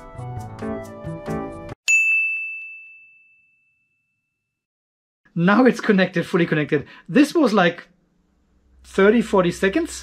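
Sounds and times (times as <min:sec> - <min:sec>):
background music: 0:00.0 - 0:01.8
bright bell ding: 0:01.9 - 0:04.3.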